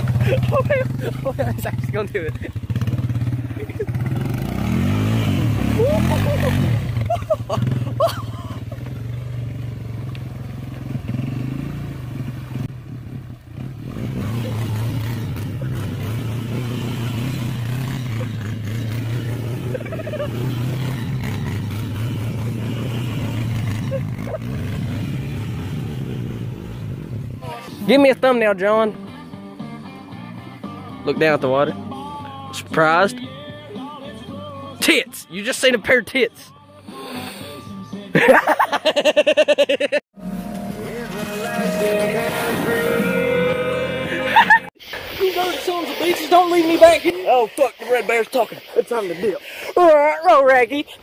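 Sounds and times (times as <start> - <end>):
atv engine running: 0.0 - 39.2, 40.2 - 44.7.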